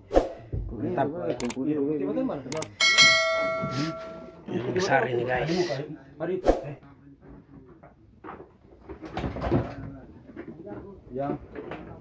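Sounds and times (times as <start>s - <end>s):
voices talking quietly: 0.5s - 12.0s.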